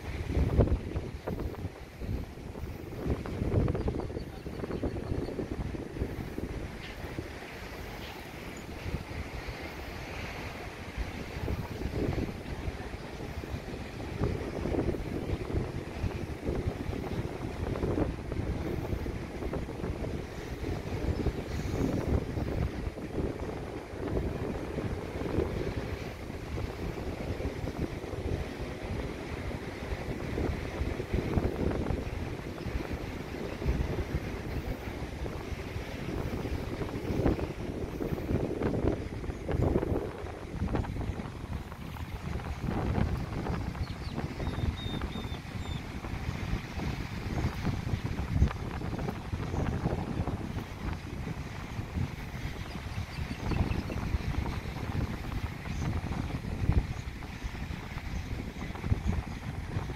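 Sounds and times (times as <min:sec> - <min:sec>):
small waves breaking on beach: 0:00.0 - 0:59.9
wind gusting over microphone: 0:00.0 - 0:59.9.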